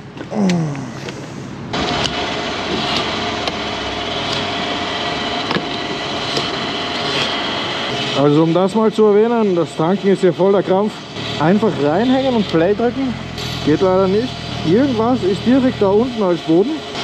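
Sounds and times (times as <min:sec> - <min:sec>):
fuel flowing from pump nozzle: 0:01.8 - 0:17.0.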